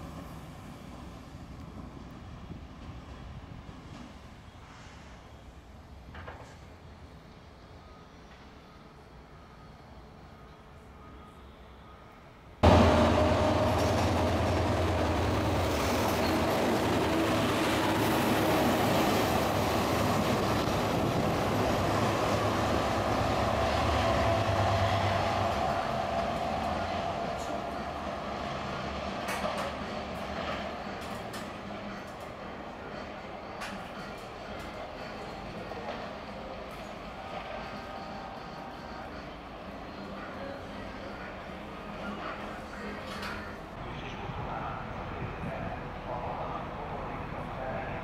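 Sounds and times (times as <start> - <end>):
diesel locomotive engine drone: 0.0 - 48.0.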